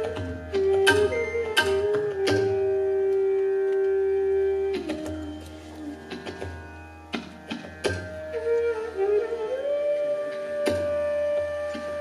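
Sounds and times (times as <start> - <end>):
bamboo flute long note: 0.0 - 6.1, 8.3 - 12.0.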